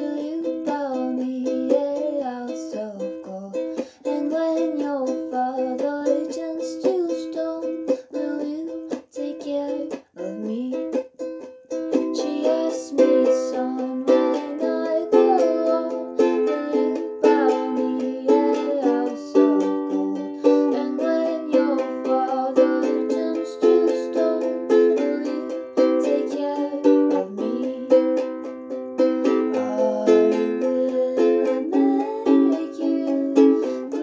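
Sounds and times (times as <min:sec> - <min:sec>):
ukulele strumming: 0:00.0 - 0:34.0.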